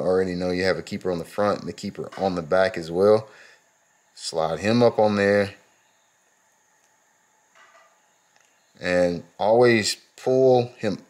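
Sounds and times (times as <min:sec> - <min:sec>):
man talking: 0:00.0 - 0:03.4, 0:04.2 - 0:05.6, 0:08.8 - 0:11.0.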